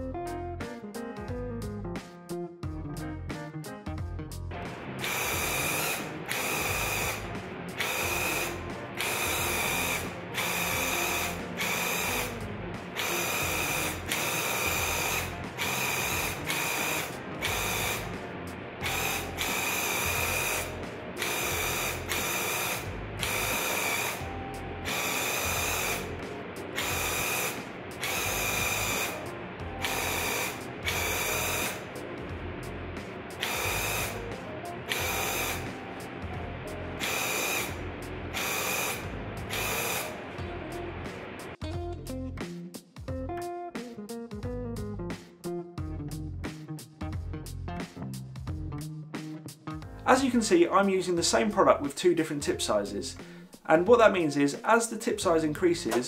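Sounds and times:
paint sprayer pump buzzing: 4.8s - 32.0s, 33.3s - 36.0s, 36.6s - 40.4s.

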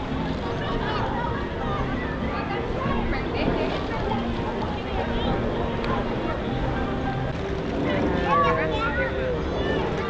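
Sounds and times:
passengers chattering: 0.0s - 10.0s.

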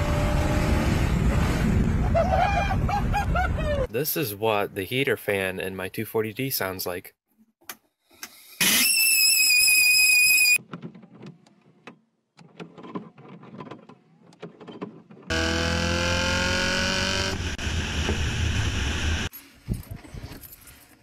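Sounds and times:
blower fan high-pitched whistle: 8.6s - 10.6s
car engine revving: 15.3s - 19.3s.

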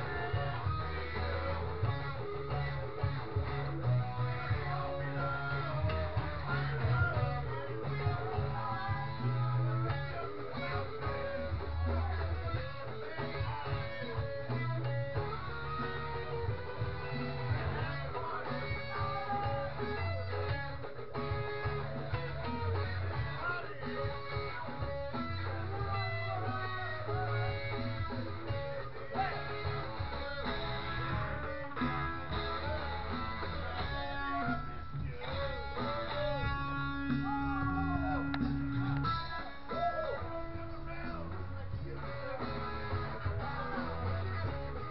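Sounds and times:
electric guitar melody: 0.0s - 44.9s.

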